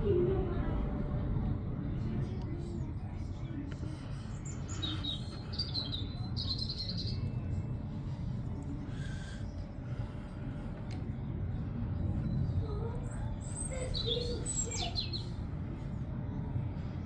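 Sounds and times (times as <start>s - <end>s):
low outdoor rumble: 0.0s - 17.0s
small birds chirping: 4.0s - 7.6s, 12.2s - 15.4s.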